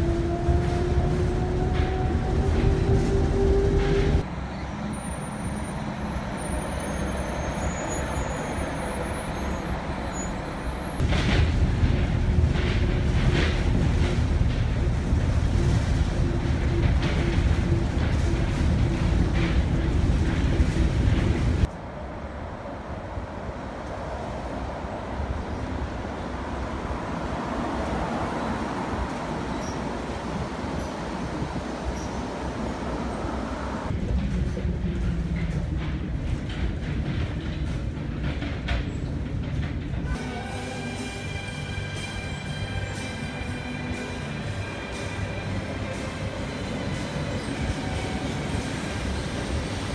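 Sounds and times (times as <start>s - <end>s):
monorail running gear rumble: 0.0s - 49.9s.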